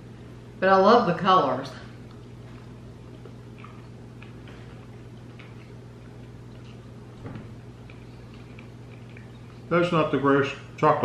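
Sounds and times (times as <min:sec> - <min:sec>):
steady low hum: 0:00.0 - 0:11.0
people chewing chocolate: 0:01.9 - 0:10.0.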